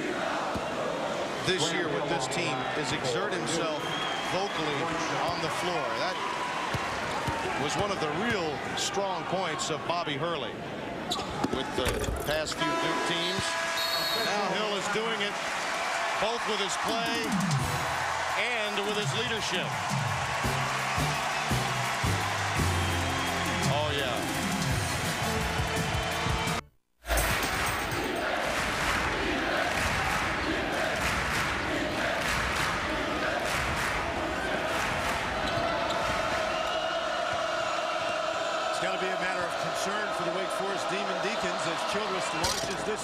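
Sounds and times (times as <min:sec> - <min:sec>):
crowd noise: 0:00.0 - 0:43.0
music: 0:19.8 - 0:26.7.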